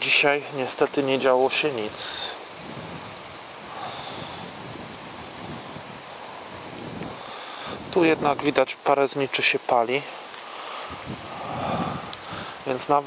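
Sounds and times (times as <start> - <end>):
wind rushing: 1.4 - 8.6, 10.8 - 13.0.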